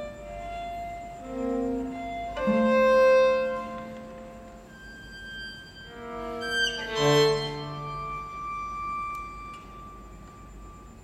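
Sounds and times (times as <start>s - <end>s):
high bowed string note: 0.0s - 10.8s.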